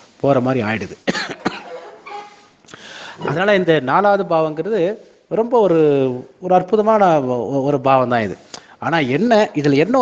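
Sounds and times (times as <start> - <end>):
person coughing: 1.0 - 2.3.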